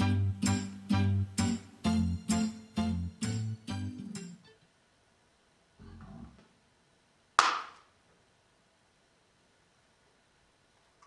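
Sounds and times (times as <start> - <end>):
faint low sound: 5.7 - 6.6.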